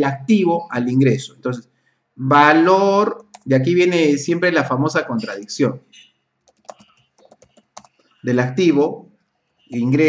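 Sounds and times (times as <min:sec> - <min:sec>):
keyboard keys clicking: 0:06.5 - 0:08.0.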